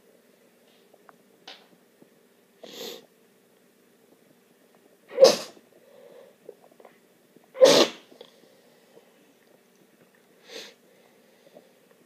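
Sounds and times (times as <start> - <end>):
person sneezing: 5.1 - 5.6, 7.6 - 8.1.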